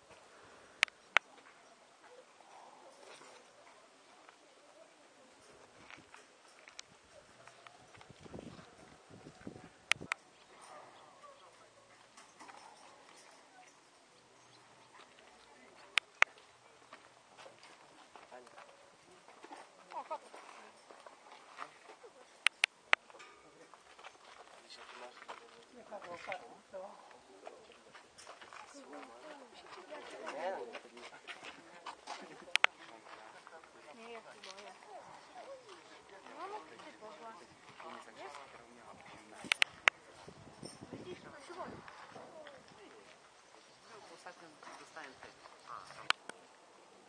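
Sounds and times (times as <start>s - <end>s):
sharp clicks: 0.8s - 1.3s, 9.9s - 10.2s, 22.4s - 23.1s, 32.5s - 32.7s, 39.5s - 40.0s.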